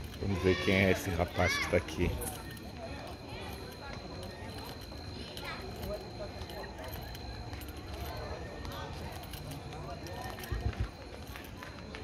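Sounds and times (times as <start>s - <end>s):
chatter of people's voices: 0.0s - 12.0s.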